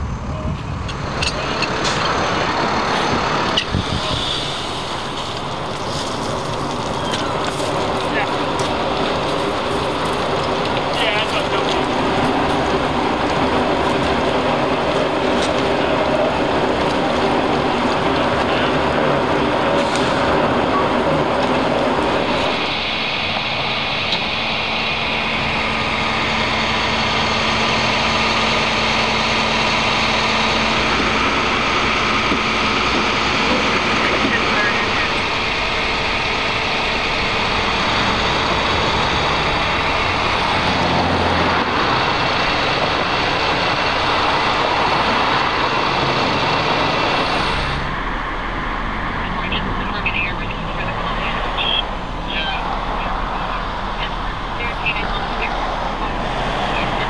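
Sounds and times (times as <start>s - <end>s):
broad rushing noise: 0.0s - 57.0s
diesel engine running: 0.0s - 57.0s
steady hum: 0.0s - 57.0s.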